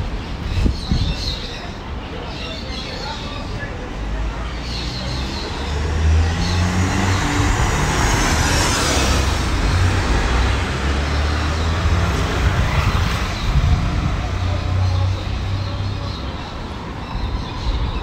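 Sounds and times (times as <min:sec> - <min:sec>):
traffic noise: 0:00.0 - 0:18.0.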